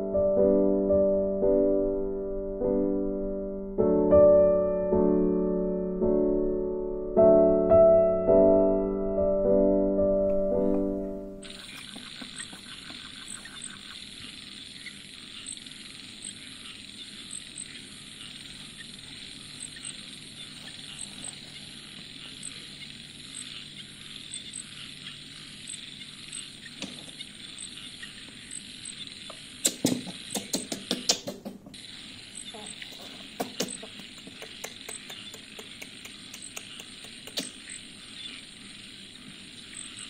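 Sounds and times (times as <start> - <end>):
steady hiss: 10.3 - 40.0
sharp clicks and rustling: 11.4 - 31.8, 32.4 - 37.9
faint regular ticking: 11.4 - 40.0.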